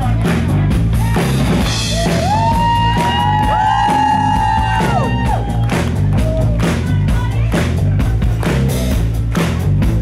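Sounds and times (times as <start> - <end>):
pop-rock band playing: 0.0 - 10.0.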